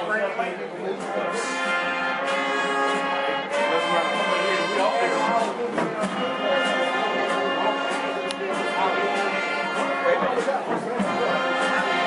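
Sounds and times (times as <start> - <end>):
brass chords: 0.0 - 12.0
drum and cymbal hits: 1.0 - 12.0.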